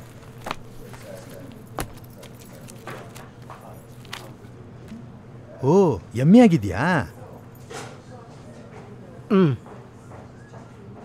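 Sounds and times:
paper rustling: 0:00.0 - 0:05.0.

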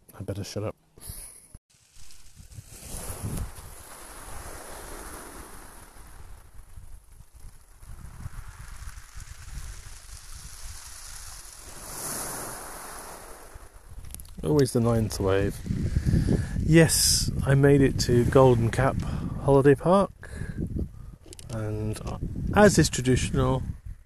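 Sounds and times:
sea waves breaking on beach: 0:01.8 - 0:14.1
wind rumble on microphone: 0:02.0 - 0:24.0.

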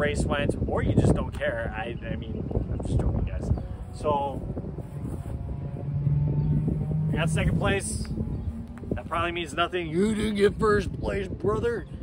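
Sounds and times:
wind rumbling on microphone: 0:00.0 - 0:12.0
steady engine drone: 0:03.0 - 0:12.0.

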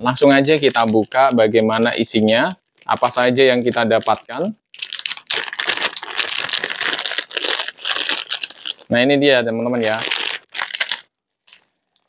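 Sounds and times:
plastic packaging crinkling: 0:00.4 - 0:08.9, 0:09.8 - 0:12.0.

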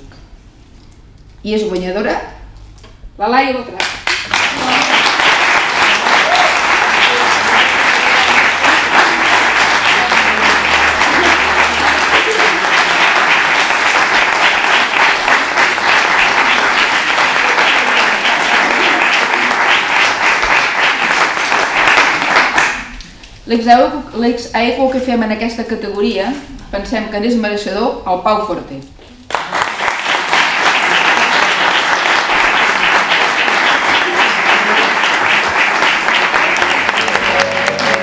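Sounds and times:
audience applauding: 0:03.8 - 0:23.0, 0:29.3 - 0:38.0.

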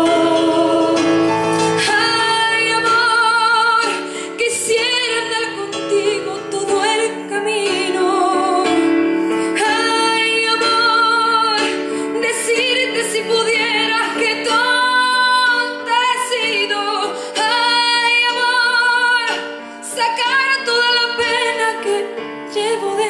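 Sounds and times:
instrumental accompaniment: 0:00.0 - 0:23.0
woman singing with vibrato: 0:00.0 - 0:23.0.

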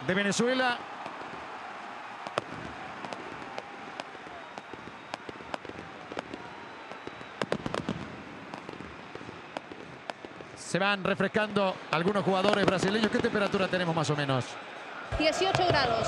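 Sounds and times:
stadium crowd noise: 0:00.0 - 0:16.0
fireworks cracking and banging: 0:00.3 - 0:14.2, 0:15.1 - 0:16.0.

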